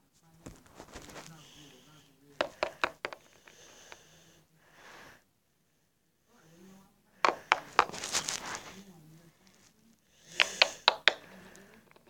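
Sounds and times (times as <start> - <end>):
brief rustle: 0.4 - 1.4, 7.8 - 8.8
plastic figurines clicking: 10.4 - 12.0.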